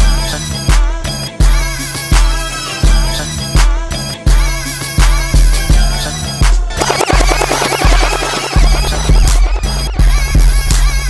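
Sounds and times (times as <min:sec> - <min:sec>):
loud hip hop dance music: 0:06.8 - 0:10.0.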